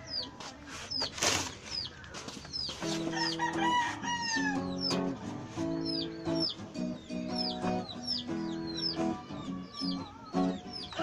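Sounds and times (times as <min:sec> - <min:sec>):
bird peeping: 0:00.0 - 0:11.0
acoustic guitar plucked: 0:02.7 - 0:11.0.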